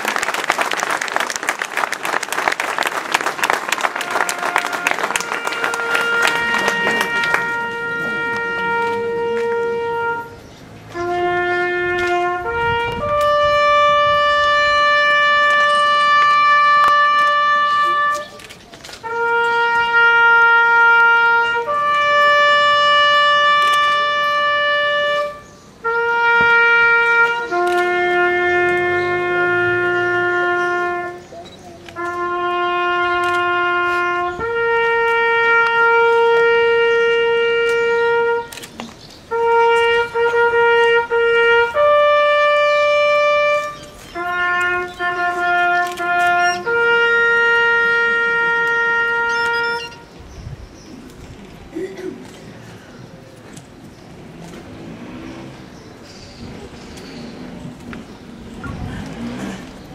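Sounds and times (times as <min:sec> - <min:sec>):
solo trumpet long note: 0:03.8 - 0:18.4, 0:19.0 - 0:31.3, 0:32.0 - 0:38.6, 0:39.3 - 0:50.2.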